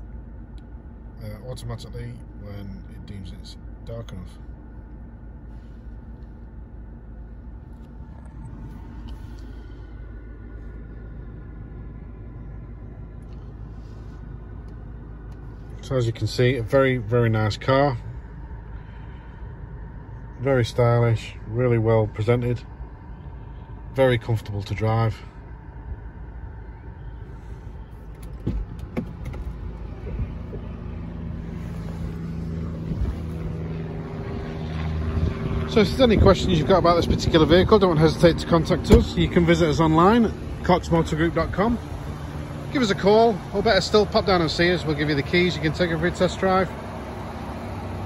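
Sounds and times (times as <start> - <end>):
car cabin low rumble: 0.0 - 48.0.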